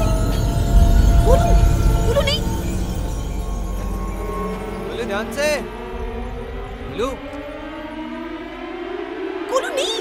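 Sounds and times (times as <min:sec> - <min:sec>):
horror score drone rising in pitch: 0:00.0 - 0:10.0.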